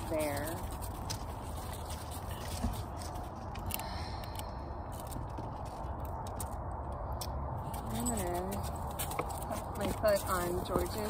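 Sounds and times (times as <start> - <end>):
faint clicks and scrapes: 0.0 - 11.0.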